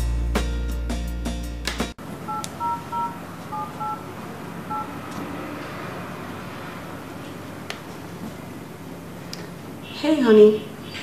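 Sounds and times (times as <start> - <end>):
background music: 0.0 - 2.0
touch-tone keypad beeps: 2.3 - 4.0, 4.7 - 4.9.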